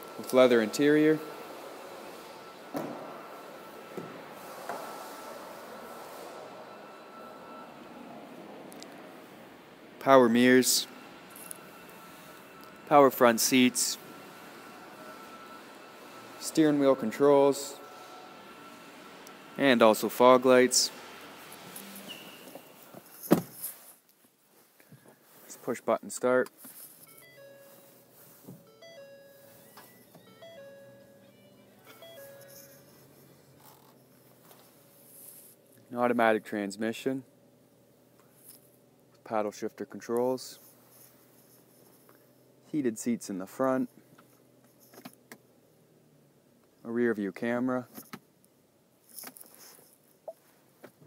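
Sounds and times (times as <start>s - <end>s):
faint steady hum: 0.0s - 51.0s
brief faint tone: 6.1s - 8.4s, 27.1s - 33.3s
two-note dashboard chime: 27.1s - 33.2s.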